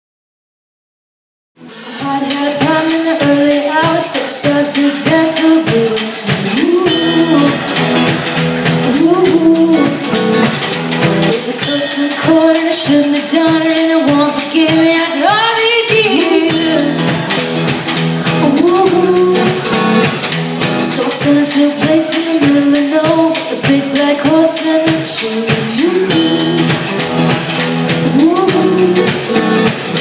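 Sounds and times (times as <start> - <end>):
strummed electric guitars: 1.6 - 30.0
women singing through a pa: 2.1 - 7.6, 11.3 - 17.3, 20.8 - 26.8.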